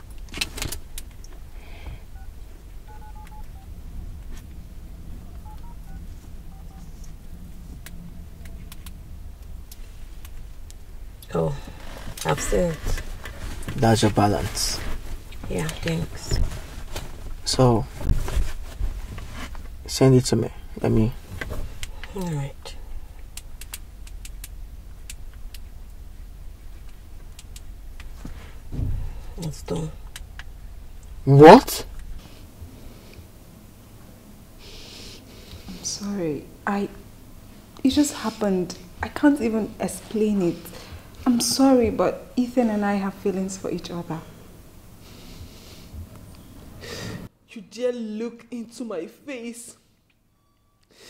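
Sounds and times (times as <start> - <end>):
low rumble inside a car: 0.0 - 34.6, 35.2 - 46.8
phone keypad beeps: 2.2 - 3.7, 5.3 - 6.9
sharp clicks: 23.2 - 26.0, 26.8 - 28.2.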